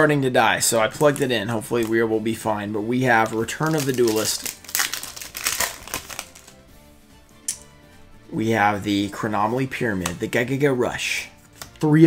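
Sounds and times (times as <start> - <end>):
faint background music: 0.0 - 12.0
handling trading cards: 0.7 - 2.1, 3.0 - 6.7, 9.7 - 10.6, 11.4 - 12.0
foil wrapper crackle: 0.9 - 2.0, 3.2 - 6.6.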